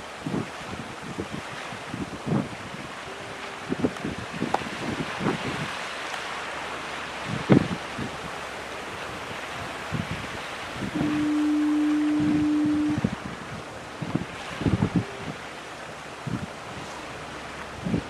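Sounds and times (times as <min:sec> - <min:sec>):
wind buffeting microphone: 0:00.0 - 0:18.0
foghorn blast: 0:09.3 - 0:13.2.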